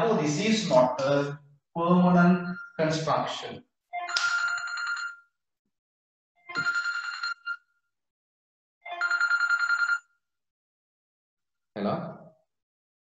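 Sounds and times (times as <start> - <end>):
telephone ringing: 4.0 - 5.3, 6.5 - 7.7, 8.9 - 10.2.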